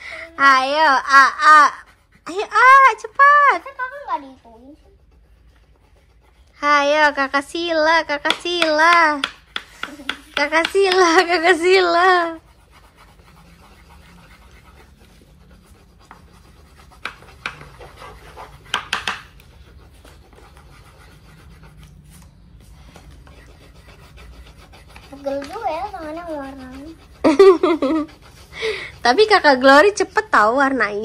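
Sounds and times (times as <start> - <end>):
coloured pencils scratching on paper: 0.0 - 31.0
child's voice: 3.5 - 5.0, 25.0 - 27.0.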